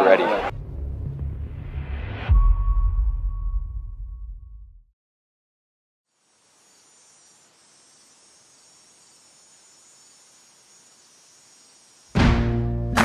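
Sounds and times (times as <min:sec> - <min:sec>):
crickets trilling: 0:06.1 - 0:12.2.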